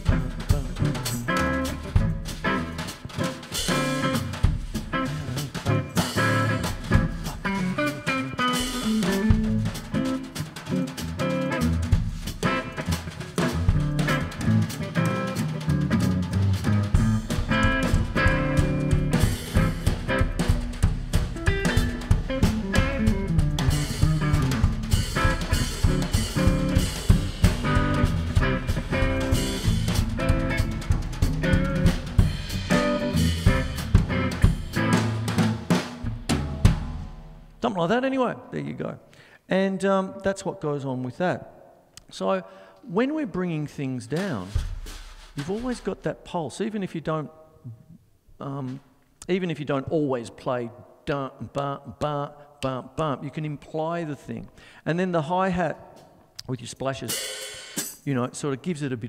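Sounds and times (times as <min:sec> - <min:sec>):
electric guitar: 0:00.0 - 0:36.9
drum kit: 0:00.0 - 0:37.6, 0:44.1 - 0:46.3, 0:57.0 - 0:58.2.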